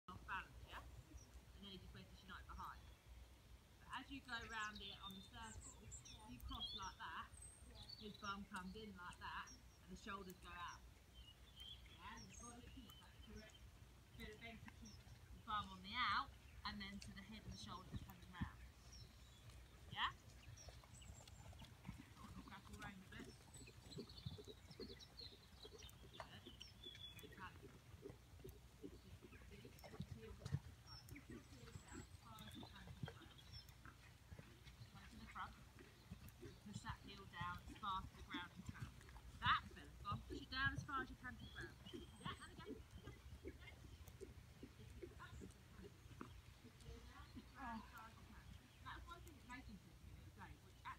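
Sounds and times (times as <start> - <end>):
muffled hoofbeats on soft ground: 0.1 - 50.9.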